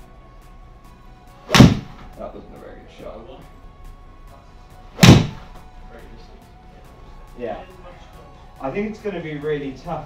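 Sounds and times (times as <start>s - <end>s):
ball hitting impact screen: 1.5s - 2.1s, 5.0s - 5.6s
golf club striking ball: 1.5s - 2.1s, 5.0s - 5.6s.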